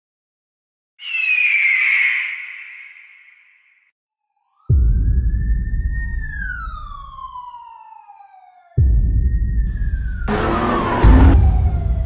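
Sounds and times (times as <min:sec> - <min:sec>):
high ringing whistle sliding down: 0:01.0 - 0:03.1.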